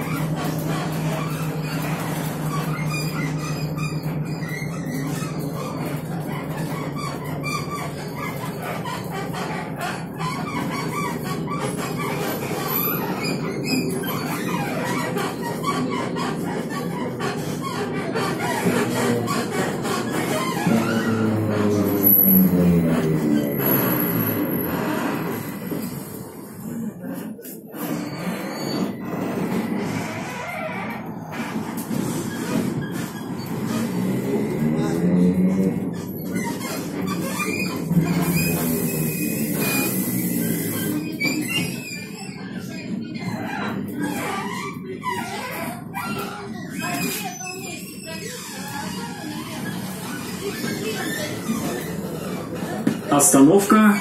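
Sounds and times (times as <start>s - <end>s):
trolleybus electric drive whine: 0.0s - 27.6s, 31.8s - 41.3s
running and rattling noise: 0.0s - 47.3s.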